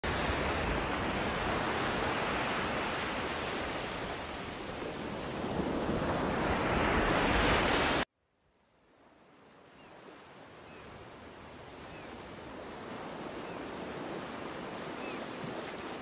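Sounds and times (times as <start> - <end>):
ocean waves washing: 0.0 - 8.1, 8.9 - 16.0.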